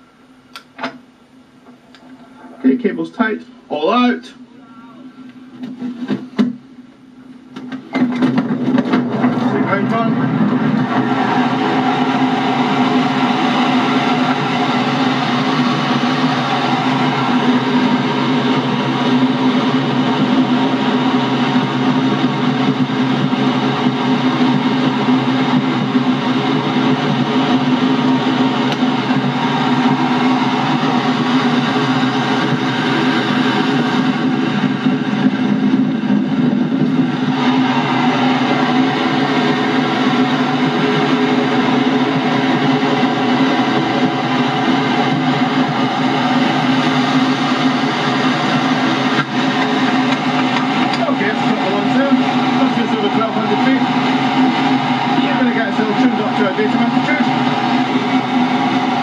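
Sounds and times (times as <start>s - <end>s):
rush of airflow over canopy: 9.2s - 59.0s.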